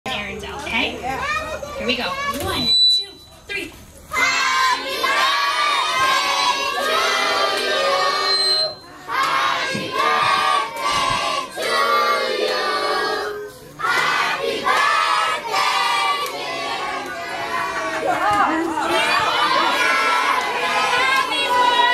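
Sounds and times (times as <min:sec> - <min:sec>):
children singing together: 0:04.2 - 0:08.4, 0:09.1 - 0:18.2, 0:19.0 - 0:21.9.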